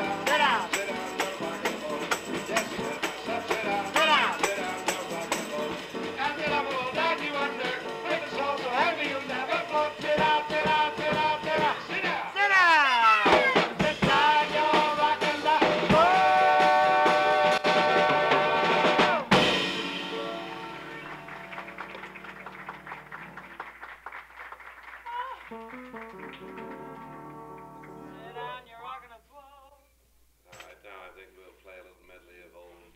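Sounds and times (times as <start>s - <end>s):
piano: 0.0s - 12.4s, 13.3s - 28.8s
person singing jazz: 0.0s - 20.8s
drums: 0.0s - 23.8s
bass: 0.0s - 29.8s
loud drum and cymbal hit: 13.3s - 20.4s.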